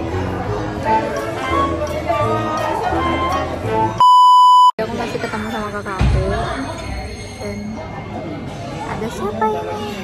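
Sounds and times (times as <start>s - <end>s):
high-pitched test-tone beep: 4.0s - 4.8s.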